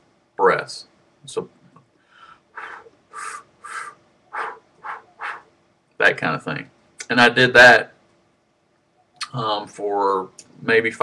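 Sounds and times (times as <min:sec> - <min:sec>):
quick breaths through pursed lips: 0:02.0 - 0:05.5.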